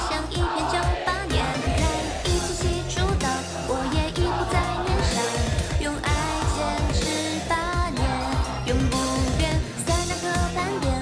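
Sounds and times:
dance beat: 0.0s - 11.0s
woman singing: 0.0s - 11.0s.

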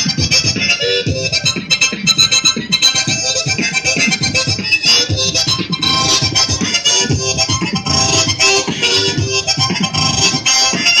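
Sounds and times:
beatboxing: 0.0s - 11.0s
harmonica notes: 0.0s - 11.0s.

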